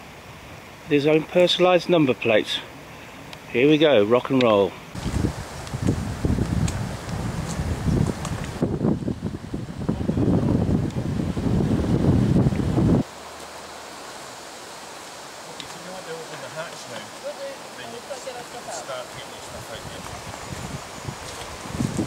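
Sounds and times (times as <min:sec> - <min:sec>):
steady outdoor hiss: 0:00.0 - 0:22.0
wind buffeting microphone: 0:04.9 - 0:13.1, 0:19.1 - 0:22.0.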